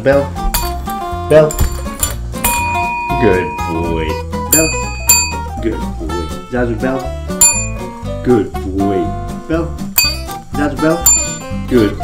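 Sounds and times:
background music: 0:00.0 - 0:12.0
call bell ding: 0:02.4 - 0:05.6, 0:07.4 - 0:08.0, 0:10.0 - 0:10.4, 0:11.0 - 0:11.7.

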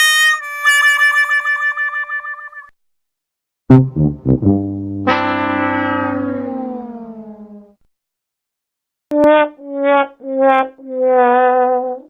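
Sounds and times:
sad trombone notes: 0:03.7 - 0:06.5
sagging horn note: 0:03.7 - 0:07.0.

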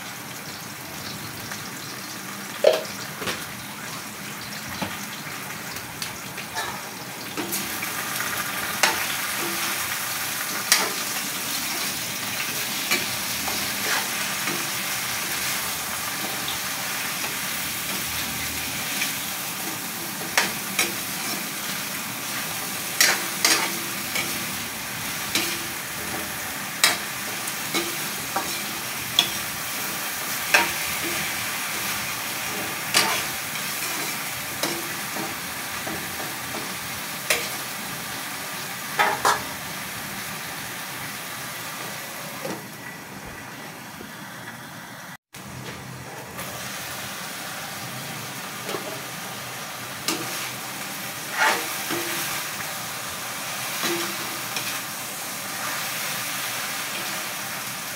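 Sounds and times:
vegetables sizzling in oil: 0:00.0 - 0:57.9
metal spatula scraping wok: 0:06.5 - 0:37.7, 0:39.0 - 0:39.6, 0:50.0 - 0:52.6.

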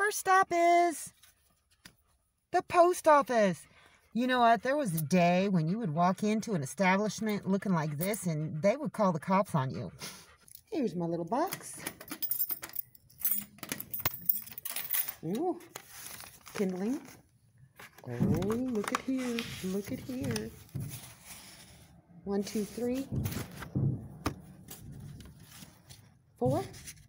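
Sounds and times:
keys jangling against metal box: 0:11.8 - 0:15.4
envelopes and paper rustling: 0:14.6 - 0:21.9, 0:24.6 - 0:27.0.

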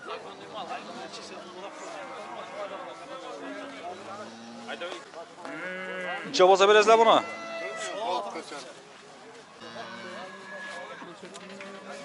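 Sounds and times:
crowd of men talking: 0:00.0 - 0:12.0
farm animal calling: 0:00.5 - 0:08.2.

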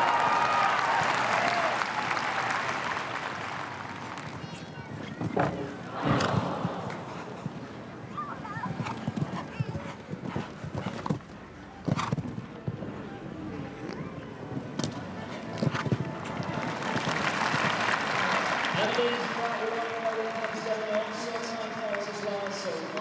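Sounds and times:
applause: 0:00.0 - 0:04.7, 0:16.4 - 0:23.0
crowd noise: 0:00.0 - 0:23.0
horse hoofbeats on grass: 0:06.2 - 0:12.9, 0:14.6 - 0:18.9.

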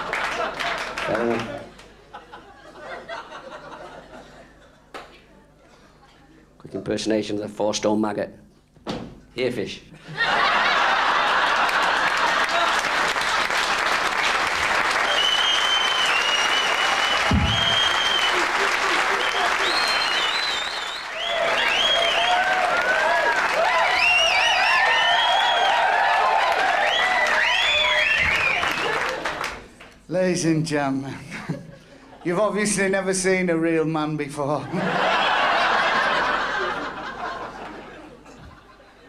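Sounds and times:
audience applauding: 0:00.0 - 0:02.0, 0:10.4 - 0:29.9
low thump: 0:17.2 - 0:17.8.

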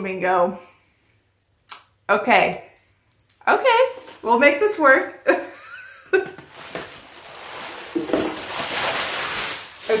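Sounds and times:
packaging rustling and crinkling: 0:03.2 - 0:04.6, 0:06.2 - 0:10.0.

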